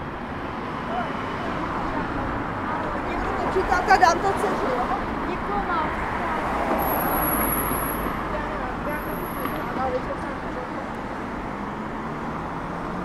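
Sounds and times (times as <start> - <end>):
cars passing: 0.0 - 13.0
city traffic noise: 0.0 - 13.0.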